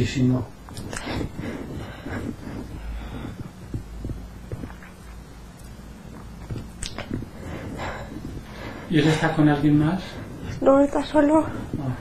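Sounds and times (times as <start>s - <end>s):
low steady hum: 0.0s - 12.0s
soft low thumps: 0.5s - 12.0s.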